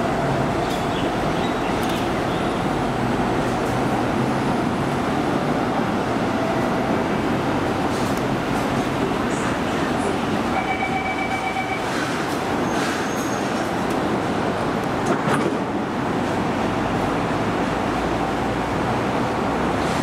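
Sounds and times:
train wheels rolling on track: 0.0s - 20.0s.

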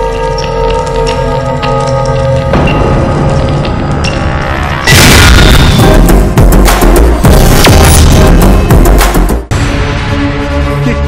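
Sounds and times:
dramatic background music: 0.0s - 11.0s
loud cinematic boom: 2.6s - 8.9s.

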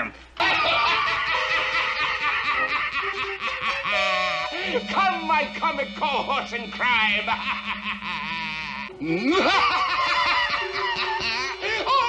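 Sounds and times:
man cackling villain laugh: 0.4s - 4.8s, 7.0s - 12.0s.

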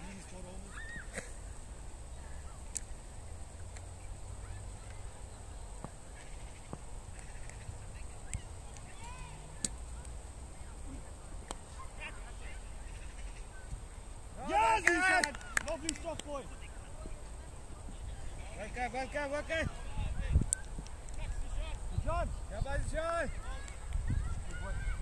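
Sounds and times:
wind rumbling on microphone: 15.3s - 25.0s.

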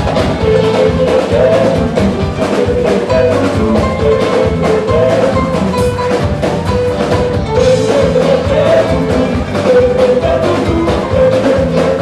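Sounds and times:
electric bass: 0.0s - 12.0s
guitar: 0.0s - 12.0s
hand drums and drum kit: 0.0s - 12.0s.

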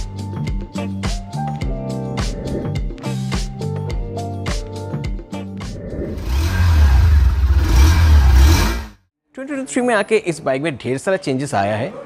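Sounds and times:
motorcycle engine revving: 6.0s - 9.0s.

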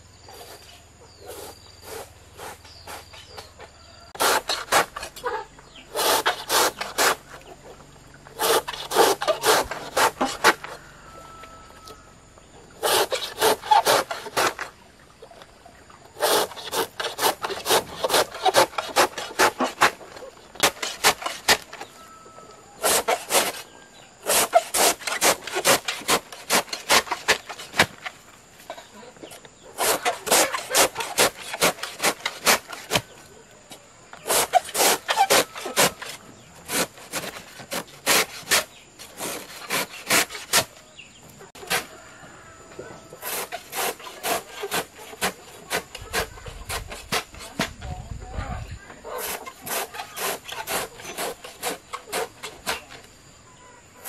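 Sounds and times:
knife slicing bamboo shoot: 4.2s - 5.3s, 5.9s - 7.3s, 8.3s - 10.8s, 12.8s - 14.7s, 16.2s - 21.9s, 22.8s - 28.0s, 29.8s - 33.2s, 34.2s - 40.7s, 43.2s - 47.8s, 49.2s - 53.0s.

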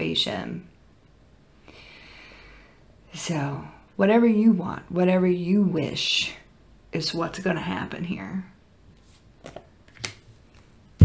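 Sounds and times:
cards being handled: 9.0s - 10.8s.

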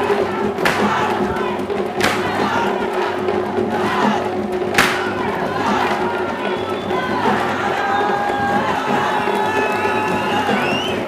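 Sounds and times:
barrel-drum music: 0.0s - 11.0s
crowd cheering and shouting: 0.0s - 11.0s
sharp crack: 0.6s - 1.0s, 2.0s - 2.3s, 4.7s - 5.2s.

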